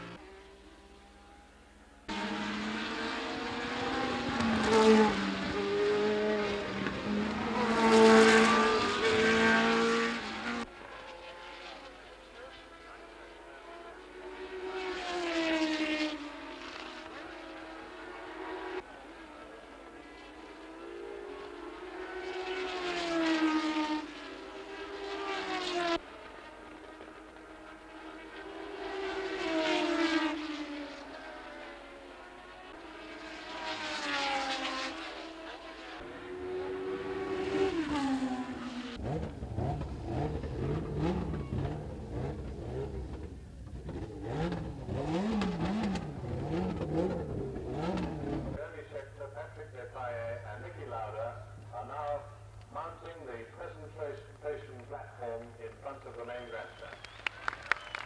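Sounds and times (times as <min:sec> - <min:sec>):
racing cars passing at speed: 0:00.0 - 0:58.0.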